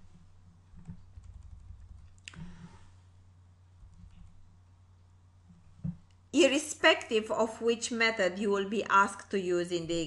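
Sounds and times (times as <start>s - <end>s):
low electrical hum: 0.0s - 10.0s
computer clicks and thuds: 0.7s - 2.7s.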